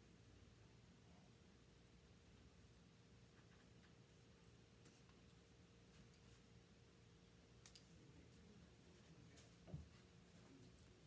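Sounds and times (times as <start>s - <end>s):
faint steady hum: 0.0s - 11.0s
faint clicks: 7.6s - 7.9s.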